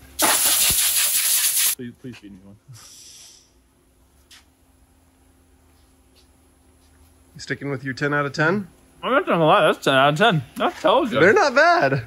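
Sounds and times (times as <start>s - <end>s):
hose spray nozzle hissing: 0.2s - 1.8s.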